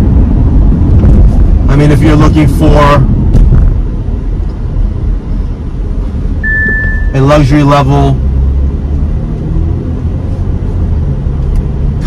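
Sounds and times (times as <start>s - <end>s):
low rumble of road and engine: 0.0s - 12.0s.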